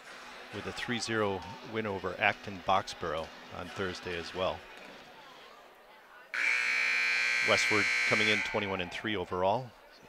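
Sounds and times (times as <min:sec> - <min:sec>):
scoreboard buzzer: 0:06.4 - 0:08.7.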